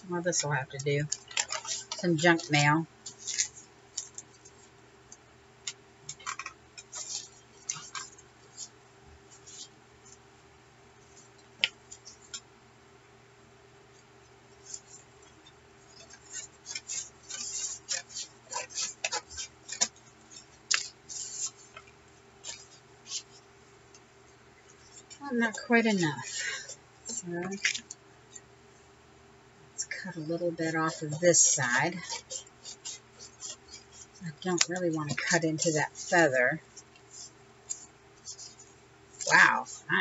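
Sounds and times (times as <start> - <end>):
faint steady hum: 0.0 - 40.0
paper rustling and crinkling: 0.7 - 4.7, 6.1 - 8.7, 15.9 - 23.4, 24.6 - 28.0, 30.9 - 40.0.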